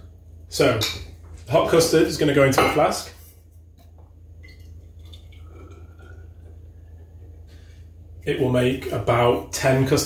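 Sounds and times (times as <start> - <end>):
low steady hum: 0.0 - 10.0
liquid pouring into a flask: 4.4 - 6.9.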